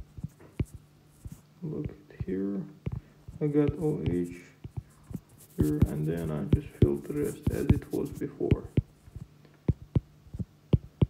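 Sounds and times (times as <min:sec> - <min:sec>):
stylus tapping on tablet screen: 0:00.0 - 0:11.0.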